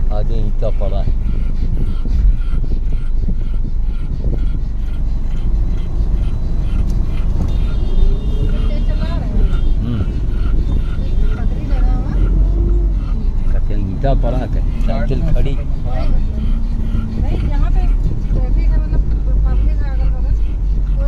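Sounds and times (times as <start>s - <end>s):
car cabin road rumble: 0.0s - 21.0s
indistinct voices: 3.4s - 21.0s.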